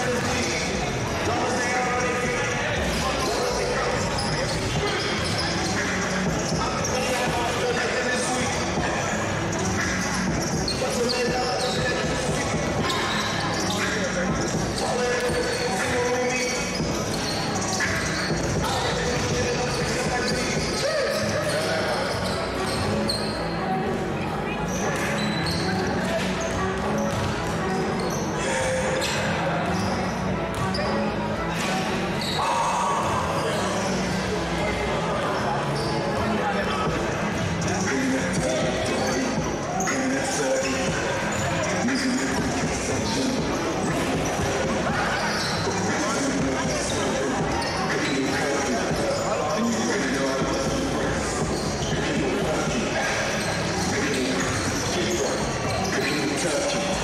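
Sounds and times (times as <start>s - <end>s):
indistinct chatter: 0.0s - 57.0s.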